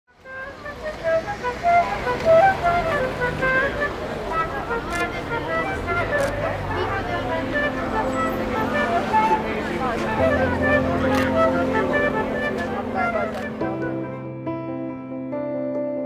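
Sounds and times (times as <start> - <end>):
traffic noise: 0.1 - 14.1
solo flute melody: 0.1 - 14.5
murmur of voices: 0.8 - 14.2.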